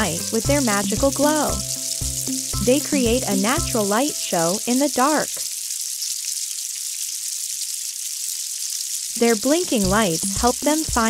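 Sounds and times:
steady high-pitched hiss: 0:00.0 - 0:05.7.

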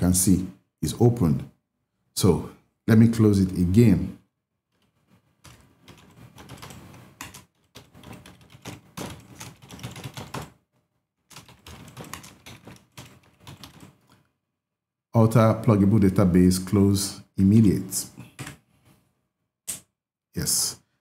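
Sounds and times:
typing on computer keyboard: 0:04.7 - 0:10.6, 0:11.3 - 0:14.2.

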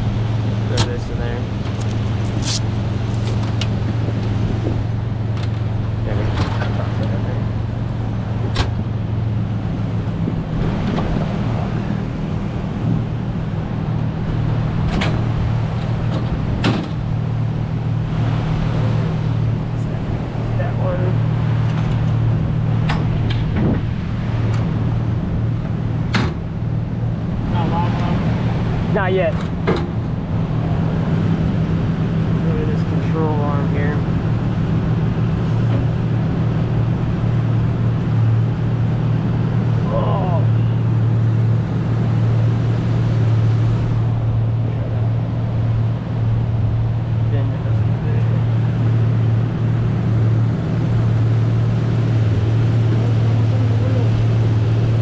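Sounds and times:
vehicle engine idling: 0:00.0 - 0:55.0
clicks and knocks of rope handling: 0:01.6 - 0:03.7.

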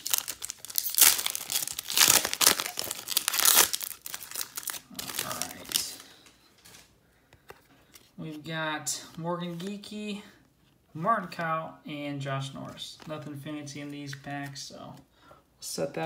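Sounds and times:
foil wrapper tearing and crinkling: 0:00.0 - 0:06.0
cards being handled: 0:12.5 - 0:15.0.

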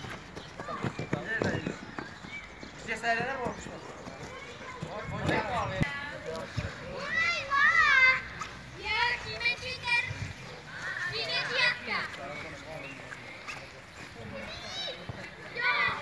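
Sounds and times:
children shouting while playing: 0:06.9 - 0:11.9, 0:14.4 - 0:16.0.

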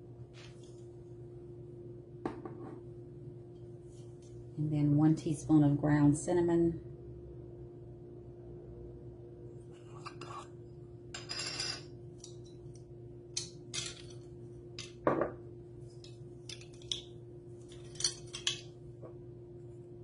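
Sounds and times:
faint steady hum: 0:00.0 - 0:20.0.

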